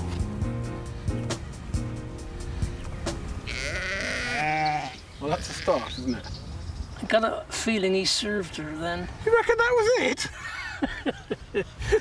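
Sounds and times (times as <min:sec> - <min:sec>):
background music with beat: 0:00.0 - 0:03.5
sheep bleating: 0:03.4 - 0:06.2.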